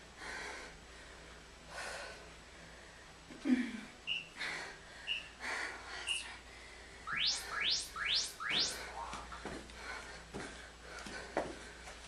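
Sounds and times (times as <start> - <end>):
rapid rising chirps: 4.1 - 4.4, 5.1 - 5.4, 7.1 - 9.4
timer beep: 7.1 - 9.1.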